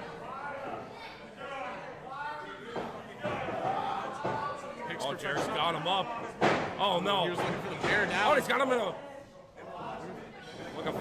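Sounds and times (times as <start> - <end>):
men talking: 1.4 - 11.0.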